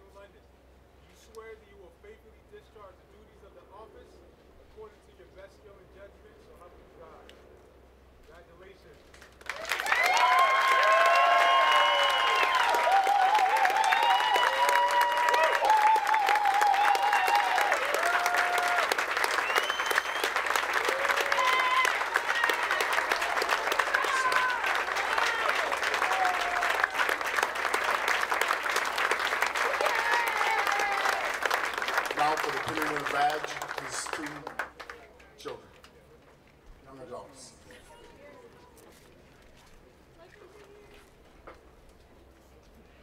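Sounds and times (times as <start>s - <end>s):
crowd clapping: 9.1s - 35.6s
cheering and whoops: 9.5s - 27.2s, 29.5s - 31.4s.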